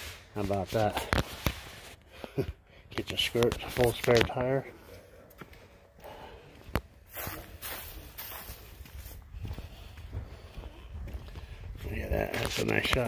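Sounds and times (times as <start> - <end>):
footsteps on concrete: 0.0 - 13.0.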